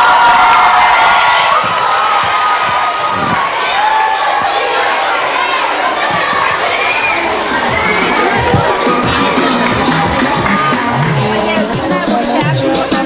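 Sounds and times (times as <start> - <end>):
children shouting and cheering: 0.0 - 13.0
high shrieks: 6.4 - 9.5
music with a steady beat: 7.8 - 13.0.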